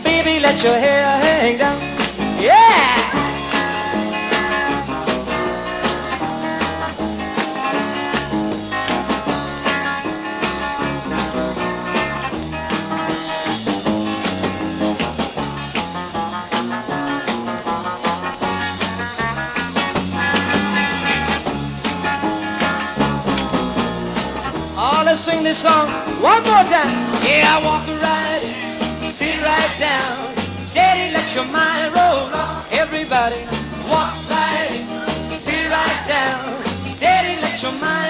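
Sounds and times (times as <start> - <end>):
guitar-led pop band playing: 0.0 - 38.0.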